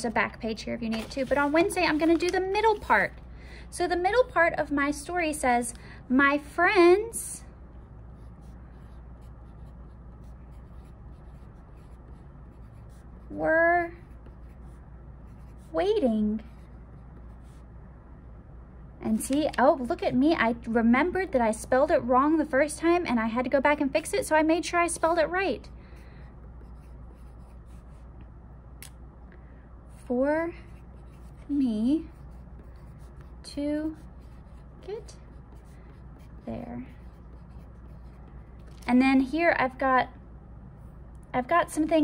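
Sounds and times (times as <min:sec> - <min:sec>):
steady low hum: 0:00.0 - 0:42.0
pencil scratching on paper: 0:07.8 - 0:17.6, 0:26.6 - 0:28.1, 0:29.9 - 0:38.7.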